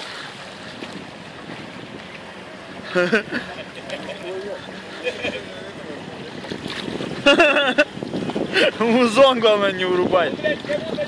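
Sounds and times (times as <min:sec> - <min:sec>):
wind on microphone: 0:00.0 - 0:02.4, 0:05.6 - 0:11.0
river water: 0:00.0 - 0:11.0.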